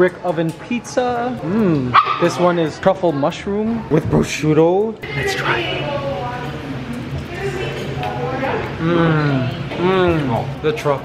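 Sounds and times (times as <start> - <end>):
people speaking: 0.0 - 6.5
man humming mmm while eating: 1.4 - 2.0, 8.8 - 10.2.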